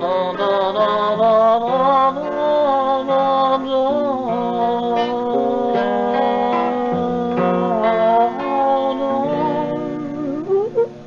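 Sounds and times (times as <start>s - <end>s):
acoustic guitar music: 0.0s - 11.0s.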